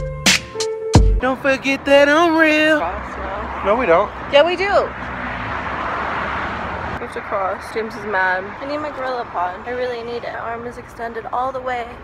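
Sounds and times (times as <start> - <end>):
vehicle passing: 1.2 - 12.0.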